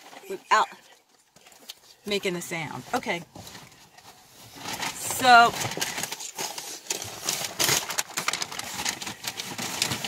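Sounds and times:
rustling: 0:00.0 - 0:10.0.

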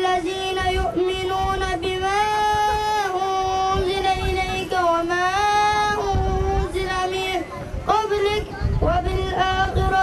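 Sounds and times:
boy chanting into a microphone: 0:00.0 - 0:10.0.

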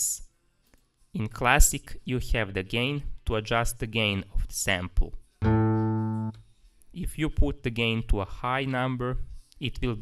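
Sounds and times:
sampled acoustic guitar note: 0:05.4 - 0:06.4.

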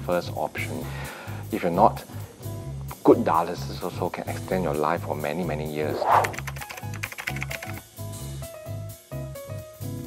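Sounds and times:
short whoosh: 0:05.8 - 0:06.6
light typing clicks: 0:06.3 - 0:07.8.

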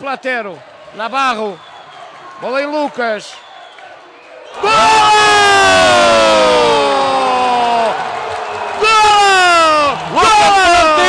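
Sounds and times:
crowd cheering: 0:00.0 - 0:11.0
commentator's long held shout: 0:04.6 - 0:08.0, 0:08.8 - 0:11.0.

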